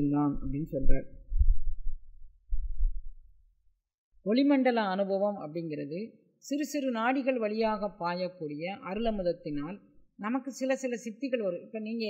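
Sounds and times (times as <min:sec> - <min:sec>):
muffled thump on microphone: 0:00.4 - 0:03.4.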